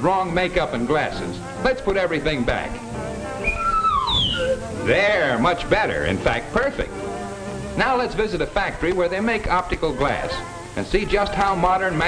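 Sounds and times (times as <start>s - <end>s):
person whistling falling notes: 3.4s - 4.7s.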